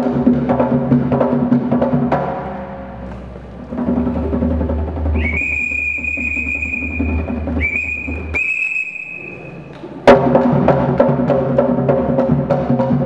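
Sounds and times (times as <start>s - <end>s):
low drum rumble: 0.0s - 8.4s
high whistle blasts: 5.2s - 9.8s.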